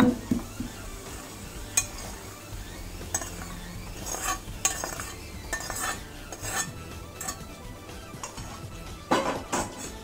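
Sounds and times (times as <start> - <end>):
metal spoon scraping steel pan: 1.2 - 10.0.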